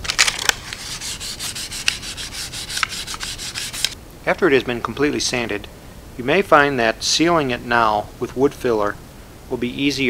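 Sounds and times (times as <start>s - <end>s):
sandpaper rubbing on wood: 0.6s - 4.0s.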